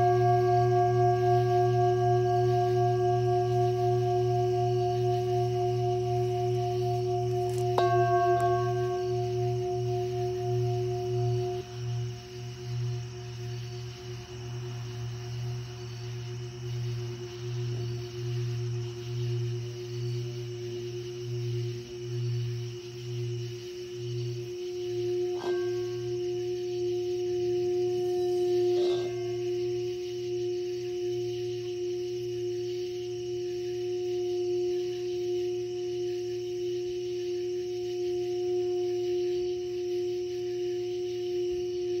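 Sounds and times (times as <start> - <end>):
singing bowl struck lightly: 0.0 - 12.4, 25.0 - 30.0
singing bowl ringing: 0.0 - 42.0.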